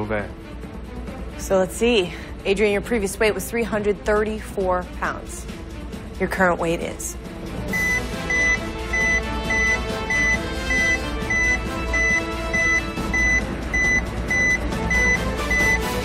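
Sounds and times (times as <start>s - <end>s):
suspense music: 0.0s - 16.0s
high electronic beeps: 7.7s - 15.9s.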